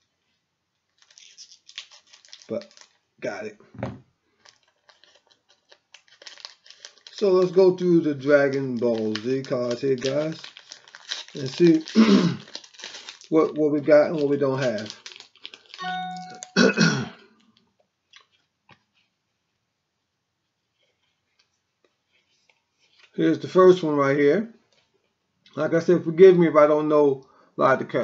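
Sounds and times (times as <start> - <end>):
card pack wrapper crinkling: 0.9 - 3.1, 4.3 - 16.6
person speaking: 2.5 - 4.0, 7.1 - 10.6, 11.3 - 12.5, 13.3 - 15.0, 15.8 - 17.2.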